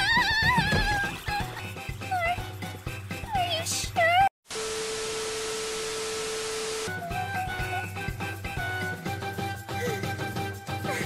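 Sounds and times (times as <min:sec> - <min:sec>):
tv static hiss: 0:04.5 - 0:06.9.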